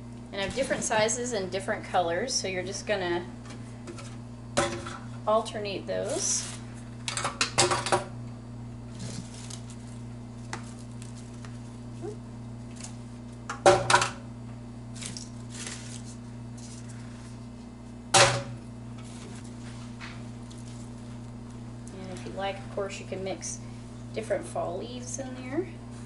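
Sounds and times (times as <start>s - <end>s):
rummaging in plastic tub: 8.9s - 9.9s, 15.0s - 17.3s.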